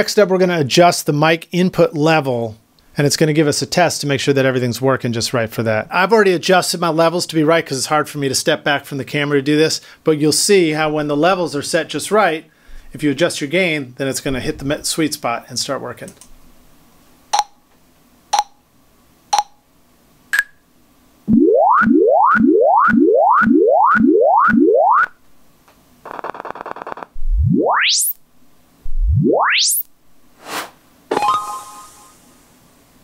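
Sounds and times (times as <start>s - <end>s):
tones gliding up from bass: 21.3s - 25.2s, 27.2s - 28.2s, 28.8s - 29.9s
short rising chirps: 27.2s - 28.2s, 28.9s - 32.4s
buzzy noise burst: 28.8s - 30.8s, 31.6s - 32.6s
brief hiss: 30.4s - 30.8s, 31.5s - 32.6s.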